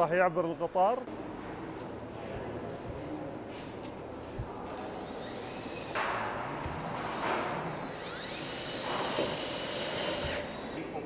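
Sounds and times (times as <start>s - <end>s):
power tools whining: 7.8s - 10.8s.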